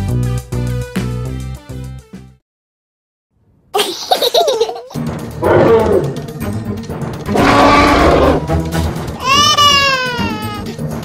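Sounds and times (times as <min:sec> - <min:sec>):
upbeat music with a beat: 0:00.0 - 0:02.4
small child laughing: 0:03.8 - 0:05.1, 0:09.2 - 0:10.8.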